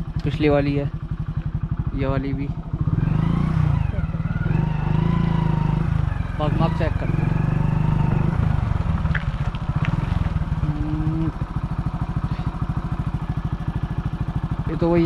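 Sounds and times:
motorcycle engine idling: 0.0s - 15.0s.

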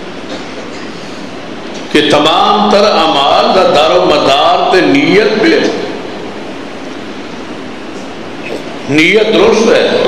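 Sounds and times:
sound system hiss and rumble: 0.0s - 10.0s.

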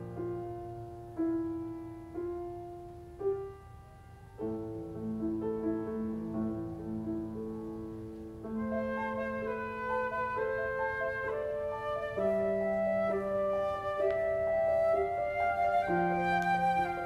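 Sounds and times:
piano chords: 0.0s - 17.0s
flute sustained notes: 8.6s - 17.0s.

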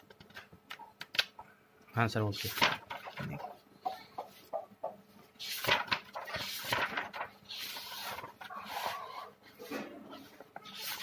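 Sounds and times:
paper rustling and crinkling: 2.3s - 3.5s, 5.4s - 11.0s.

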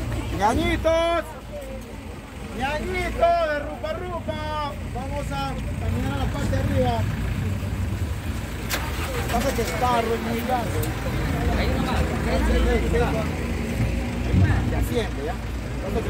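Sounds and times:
people talking: 0.0s - 7.6s, 8.7s - 16.0s
ferry motor rumble: 1.9s - 16.0s.

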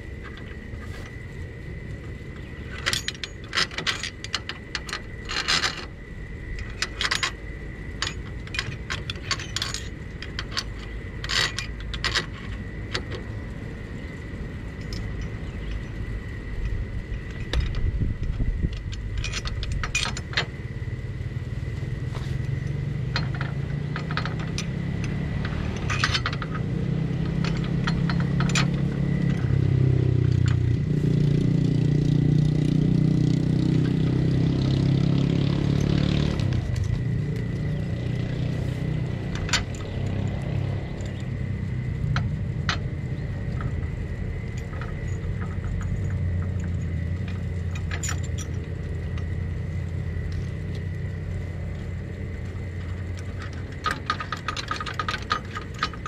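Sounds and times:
engine humming: 0.0s - 56.0s
light metal clicks and clinks: 0.0s - 56.0s.

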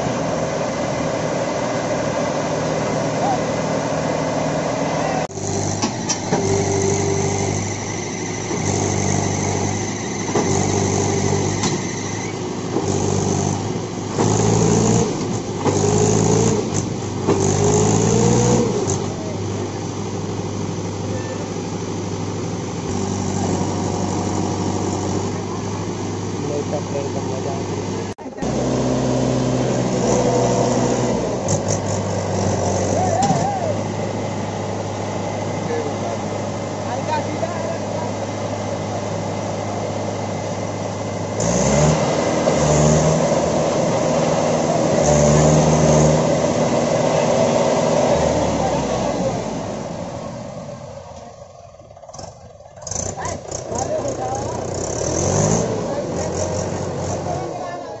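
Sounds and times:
tractor diesel engine revving: 0.0s - 58.0s.

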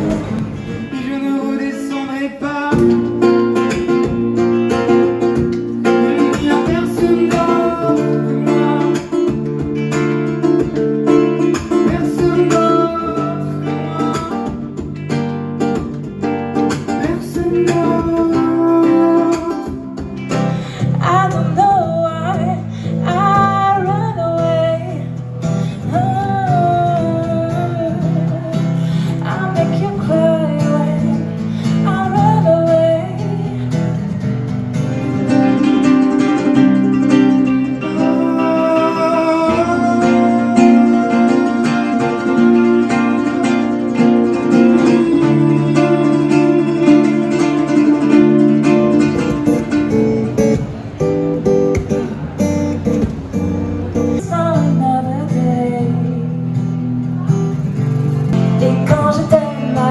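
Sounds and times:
acoustic guitars strummed: 0.0s - 59.9s
man singing: 0.6s - 4.0s, 5.8s - 9.6s, 11.1s - 14.9s, 16.9s - 20.1s, 34.8s - 49.2s.

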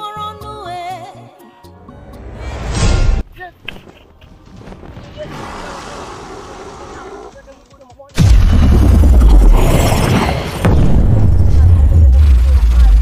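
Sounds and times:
loud deep boom: 8.2s - 13.0s.

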